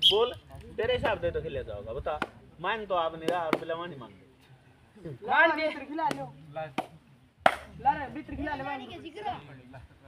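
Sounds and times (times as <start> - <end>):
sharp slaps: 6.1 - 7.7.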